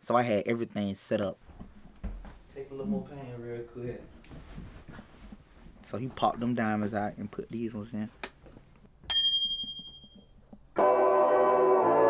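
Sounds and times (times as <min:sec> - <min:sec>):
bright bell-like ding: 0:09.1 - 0:10.3.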